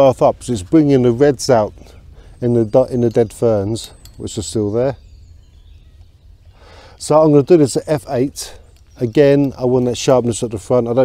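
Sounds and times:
steady low rumble: 0.0s - 11.0s
man drawing breath: 1.8s - 2.4s, 6.5s - 7.0s.

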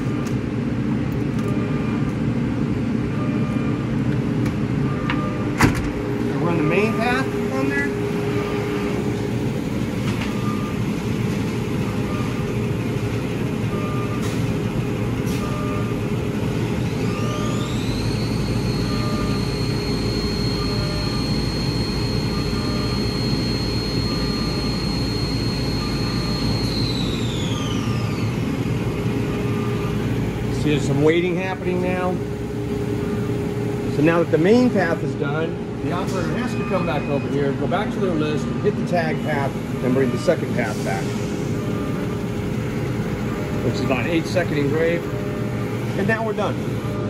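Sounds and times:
high gliding whine: 6.1s - 10.0s
laser engraver humming: 15.9s - 47.0s.

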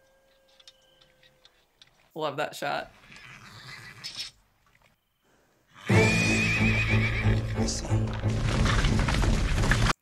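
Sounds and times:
horse vocalizing: 3.0s - 4.4s.

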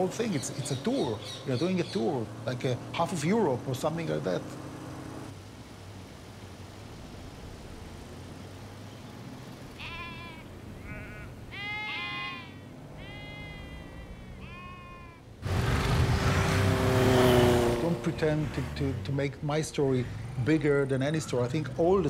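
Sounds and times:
loud motorcycle engine: 0.8s - 5.3s, 15.4s - 19.1s
sheep bleating: 9.8s - 15.3s.

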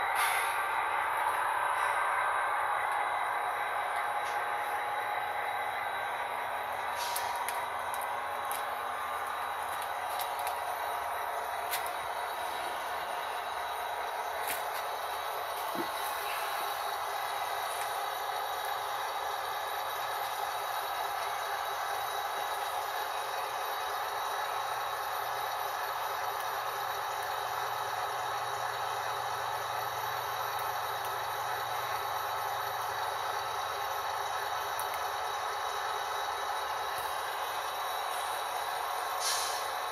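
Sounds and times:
model train rattling on track: 0.0s - 39.9s.

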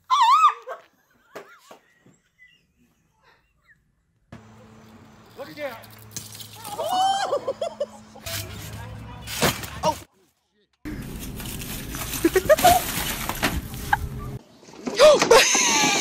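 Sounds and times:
woman squealing: 0.0s - 0.9s, 6.6s - 7.5s.

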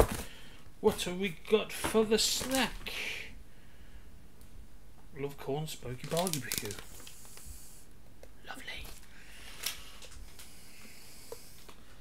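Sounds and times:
packaging rustling: 5.9s - 7.4s.

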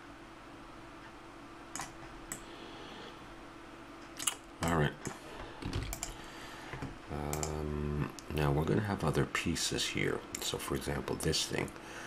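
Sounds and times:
computer keyboard and mouse clicks: 1.7s - 2.4s, 5.0s - 6.2s, 7.3s - 7.6s.

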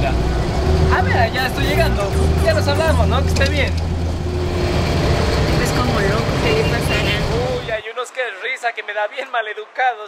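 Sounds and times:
bus rumble inside cabin: 0.0s - 7.8s.

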